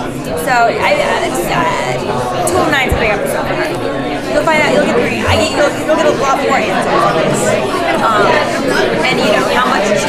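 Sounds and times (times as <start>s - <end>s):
background chatter: 0.0s - 10.0s
woman talking: 0.4s - 10.0s.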